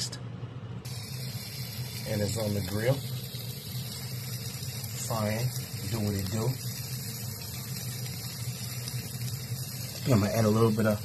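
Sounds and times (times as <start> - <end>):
steady low hum: 0.0 - 11.0
faint even hiss: 0.9 - 11.0.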